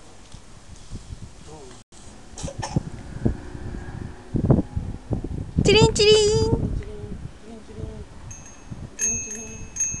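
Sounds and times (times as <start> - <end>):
bicycle bell ringing: 8.3 - 10.0.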